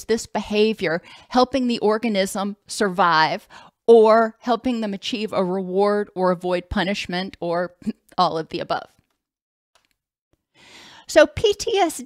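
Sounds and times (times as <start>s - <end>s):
woman breathing in: 3.5s - 3.8s, 10.5s - 11.1s.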